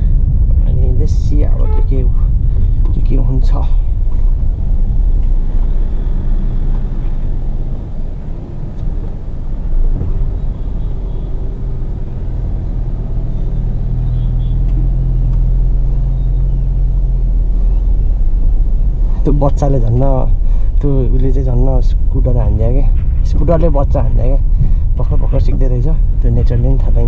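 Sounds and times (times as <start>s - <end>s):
car engine and tyres rumbling: 0.0s - 27.0s.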